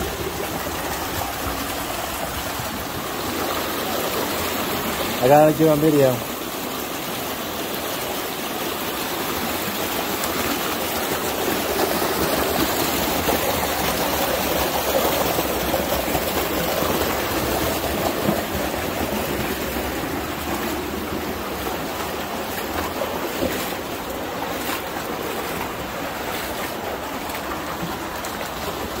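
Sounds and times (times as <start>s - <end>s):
creek water rushing: 0.0s - 29.0s
faint splashes of wading: 0.0s - 29.0s.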